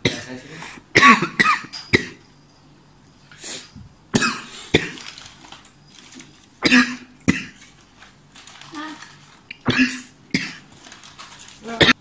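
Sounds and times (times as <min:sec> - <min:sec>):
man coughing: 0:01.0 - 0:02.2, 0:04.2 - 0:05.0, 0:06.6 - 0:07.6.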